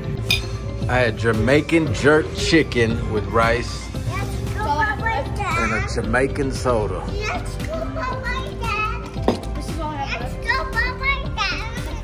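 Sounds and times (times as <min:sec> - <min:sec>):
background music: 0:00.0 - 0:12.0
children's voices: 0:03.2 - 0:06.0, 0:07.0 - 0:12.0.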